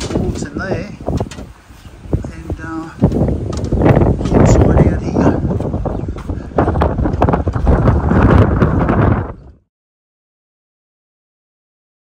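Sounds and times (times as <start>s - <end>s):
wind buffeting microphone: 0.0s - 9.7s.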